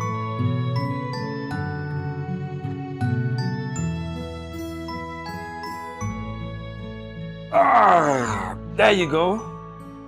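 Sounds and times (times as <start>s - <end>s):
soft bell-like background music: 0.0s - 7.3s, 8.9s - 10.0s
person exclaiming loudly: 7.6s - 9.3s.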